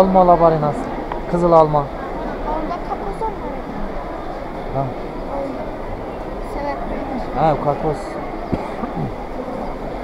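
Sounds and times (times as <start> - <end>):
faint distant voices: 0.0 - 10.0
market hall hubbub: 0.0 - 10.0.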